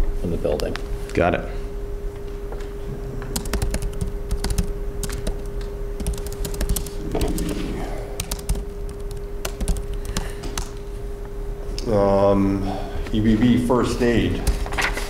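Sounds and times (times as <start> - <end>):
steady low hum: 0.0 - 15.0
laptop keyboard typing: 3.3 - 10.8.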